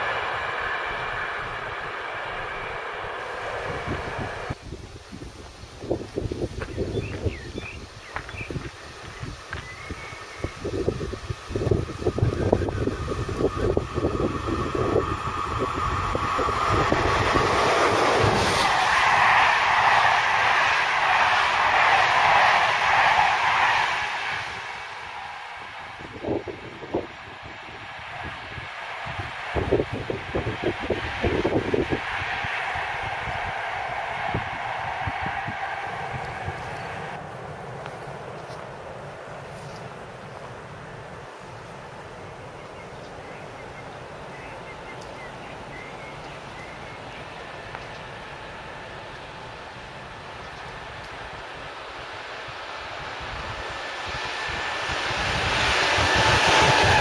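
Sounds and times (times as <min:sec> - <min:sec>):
high whine: 0:00.0 - 0:04.8, 0:07.1 - 0:57.0
electric train passing: 0:00.0 - 0:05.0, 0:05.8 - 0:57.0
wheels rushing on rail: 0:00.0 - 0:57.0.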